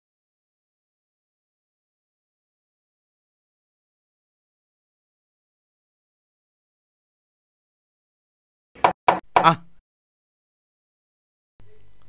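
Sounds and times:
man speaking: 9.4 - 9.8.

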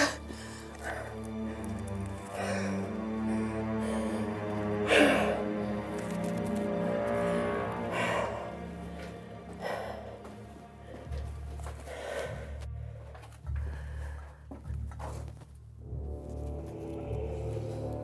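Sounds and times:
breathing through a gas mask: 0.0 - 5.9
low dark film music: 0.0 - 18.0.

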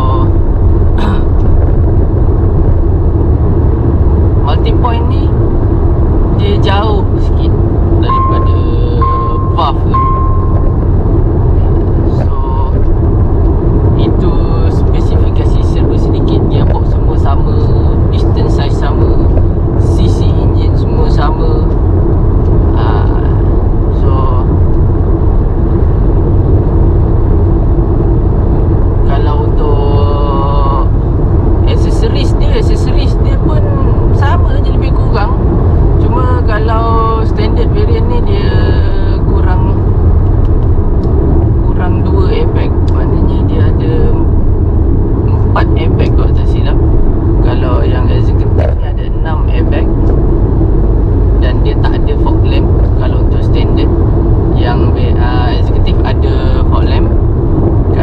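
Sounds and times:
road and engine rumble: 0.0 - 58.0.

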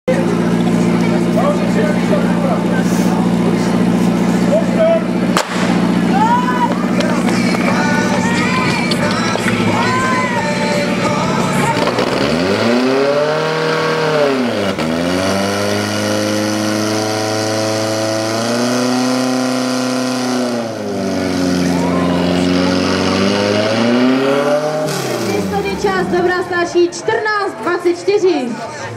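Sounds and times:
pump engine running at high revs: 0.1 - 26.2
people shouting: 5.6 - 11.8.

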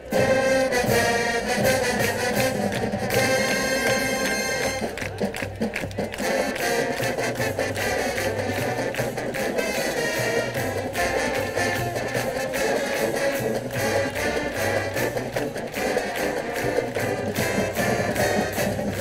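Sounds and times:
held brass chord: 0.0 - 5.0, 6.1 - 19.0
marching band playing: 0.0 - 19.0.

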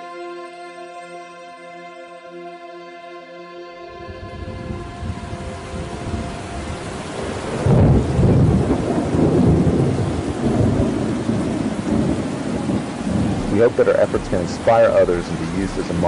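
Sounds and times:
rumbling hissing noise: 11.9 - 16.0.

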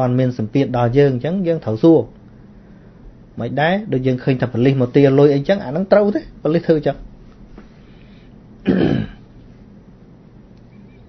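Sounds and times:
man clearing his throat: 8.6 - 9.3.

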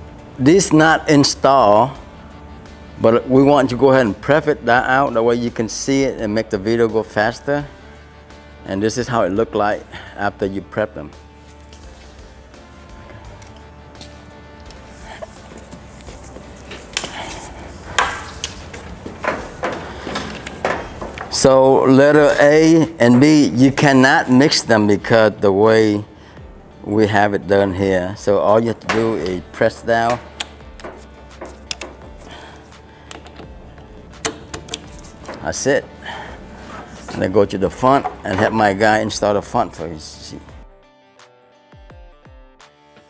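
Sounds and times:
quiet background music: 0.0 - 43.0
hydraulic hose couplers clicking: 13.4 - 21.7, 28.8 - 39.1.

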